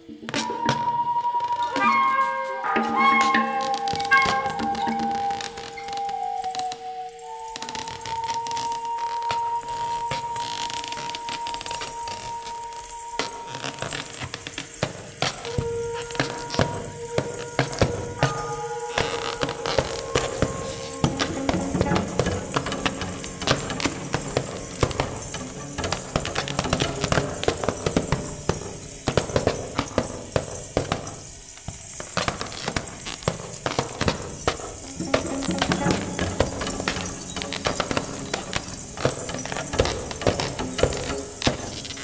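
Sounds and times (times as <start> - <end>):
low flute notes: 0.0 - 29.0, 34.6 - 42.0.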